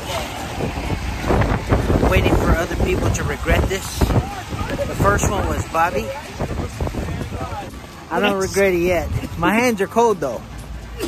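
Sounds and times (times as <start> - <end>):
gusty wind buffeting microphone: 0.0 - 9.7.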